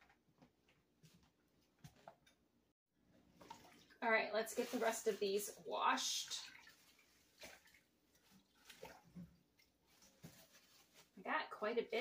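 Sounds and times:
mint sprigs rustling: 0:04.4 - 0:05.6, 0:09.8 - 0:11.2.

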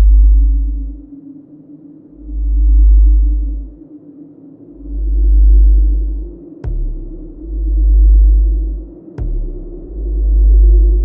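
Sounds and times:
deep bass pulses: 0:00.0 - 0:01.1, 0:02.2 - 0:03.7, 0:04.8 - 0:11.0
low steady drone: 0:00.0 - 0:11.0.

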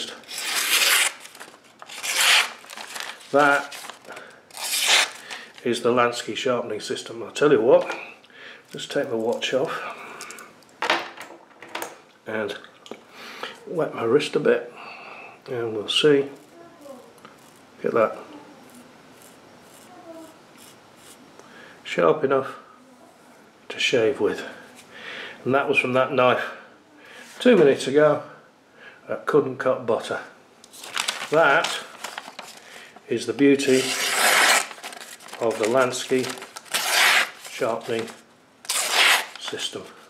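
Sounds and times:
knife slicing paper: 0:00.0 - 0:05.4, 0:33.6 - 0:39.6.

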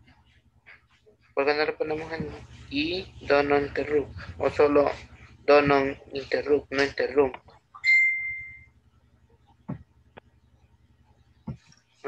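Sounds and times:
high bell-like ding: 0:07.9 - 0:08.7.

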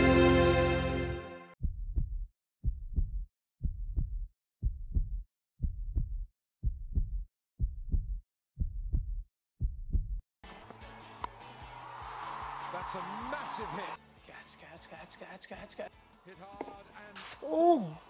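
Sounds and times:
music: 0:00.0 - 0:01.6, 0:10.4 - 0:18.0
heartbeat thumps: 0:01.6 - 0:10.2.

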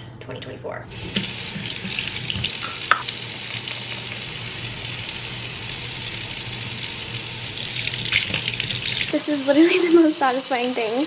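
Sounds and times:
faucet running into metal sink: 0:01.0 - 0:11.0.

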